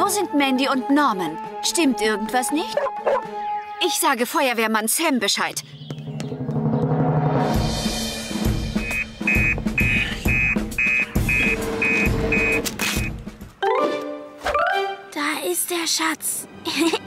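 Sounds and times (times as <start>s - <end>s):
dramatic music with deep drums: 5.7s - 13.6s
high beeping pulse: 8.8s - 13.1s.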